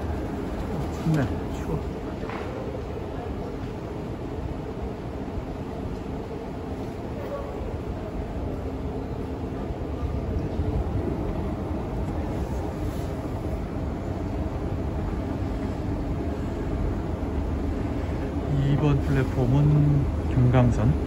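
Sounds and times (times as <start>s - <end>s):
railway station rumble and hum: 0.0s - 21.0s.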